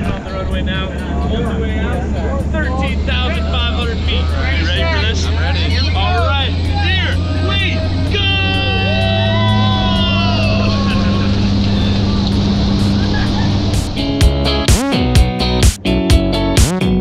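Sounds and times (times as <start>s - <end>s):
propeller plane engine droning: 0.0s - 14.6s
guitar music: 0.0s - 17.0s.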